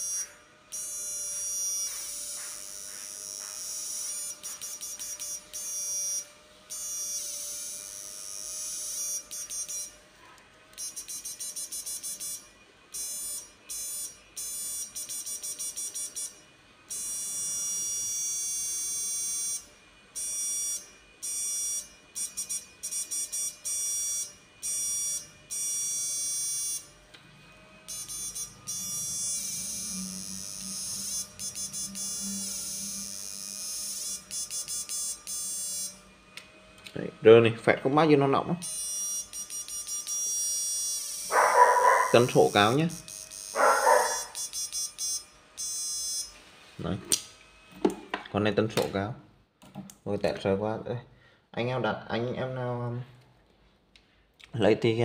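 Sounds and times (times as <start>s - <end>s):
high-pitched electronic buzz: 0.0s - 10.0s, 10.7s - 36.3s, 37.1s - 48.0s.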